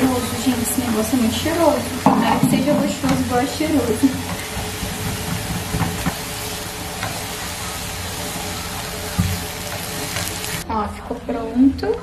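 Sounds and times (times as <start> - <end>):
mushrooms sizzling in a pan: 0.0 - 10.6.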